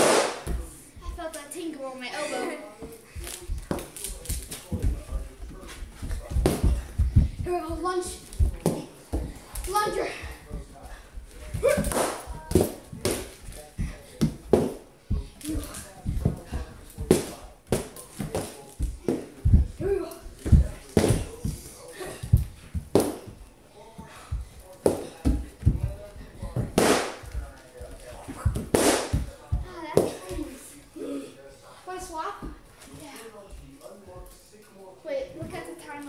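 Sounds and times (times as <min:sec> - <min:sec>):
sharp whacks and thumps: 0:00.0 - 0:00.6, 0:11.6 - 0:13.3, 0:26.7 - 0:27.3, 0:28.4 - 0:29.3
toy sword hitting pillow: 0:00.0 - 0:00.6, 0:11.6 - 0:13.4, 0:26.8 - 0:27.3, 0:28.6 - 0:29.3
soft low thumps: 0:04.8 - 0:09.4.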